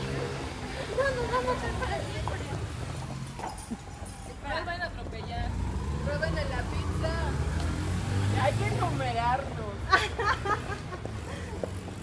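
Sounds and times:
women talking: 0.2s - 3.1s, 3.8s - 7.6s, 8.2s - 10.6s.

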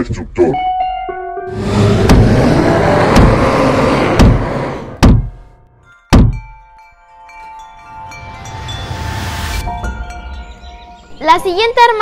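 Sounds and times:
loud rushing noise: 1.5s - 5.0s
sharp hits: 1.5s - 6.6s
thuds: 1.7s - 5.5s, 6.1s - 6.5s
chimes ringing: 5.7s - 12.0s.

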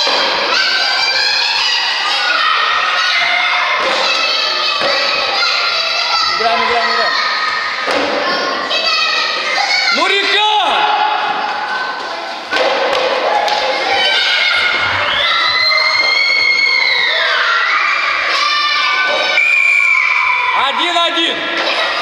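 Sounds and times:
children shouting and cheering: 0.0s - 22.0s
thud: 7.8s - 8.5s, 12.5s - 13.6s.

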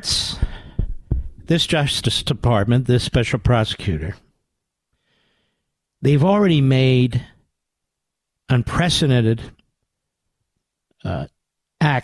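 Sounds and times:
man speaking: 0.0s - 0.6s, 1.4s - 4.2s, 6.0s - 7.4s, 8.5s - 9.6s, 11.0s - 12.0s
faint intake of breath: 0.2s - 1.0s, 4.9s - 5.8s.

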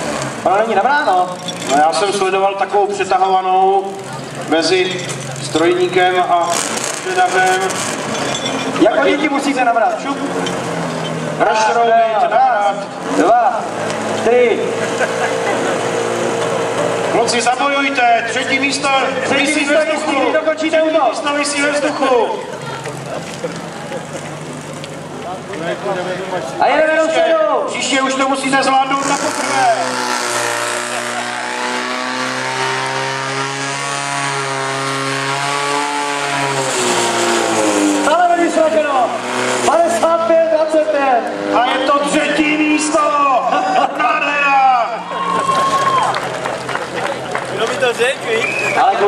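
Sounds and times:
pump engine running at high revs: 0.0s - 11.5s, 12.9s - 20.5s, 21.2s - 26.6s, 28.8s - 43.9s
pump engine droning under load: 22.1s - 26.6s, 28.9s - 39.9s.

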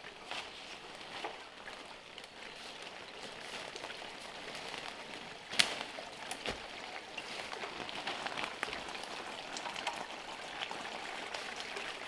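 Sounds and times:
dry leaves and brush rustling: 2.5s - 8.6s
bamboo stem cracking: 5.5s - 6.7s.

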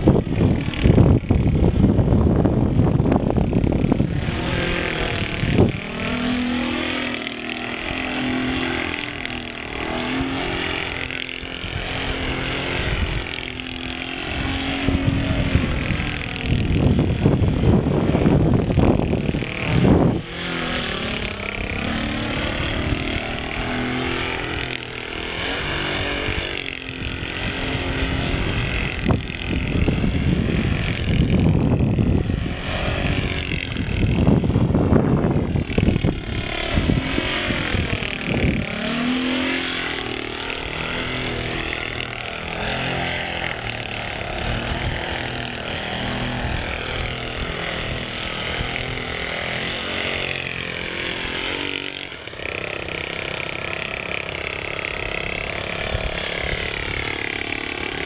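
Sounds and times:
model plane engine: 0.0s - 58.0s
wind rumbling on microphone: 0.0s - 58.0s.

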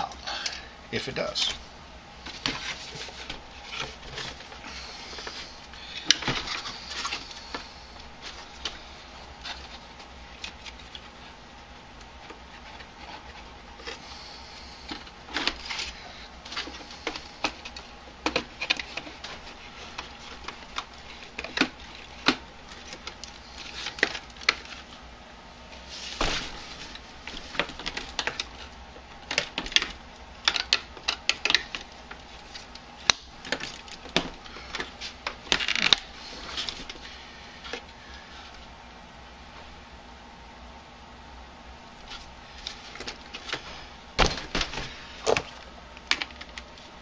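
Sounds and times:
plastic parts clicking and knocking: 16.5s - 24.8s, 27.3s - 37.0s.

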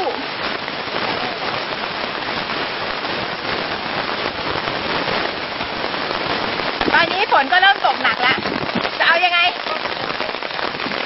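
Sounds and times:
heavy rain falling: 0.0s - 11.0s.

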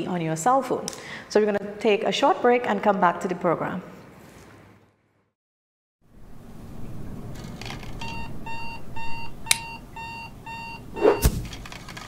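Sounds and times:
electronic alarm beeping: 8.0s - 11.3s.

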